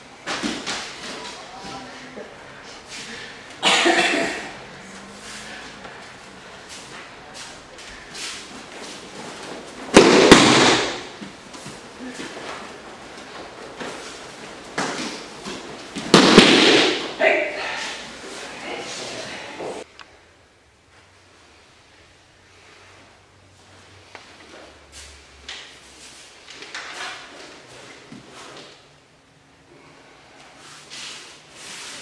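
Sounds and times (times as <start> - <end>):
wooden swords cracking: 9.8 - 11.2, 16.0 - 17.2
loud martial arts shouts: 17.0 - 18.2.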